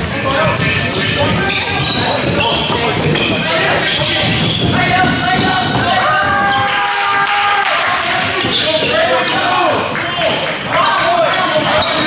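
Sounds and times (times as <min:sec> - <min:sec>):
players and spectators chattering: 0:00.0 - 0:12.0
basketball bouncing on hardwood: 0:00.5 - 0:06.6.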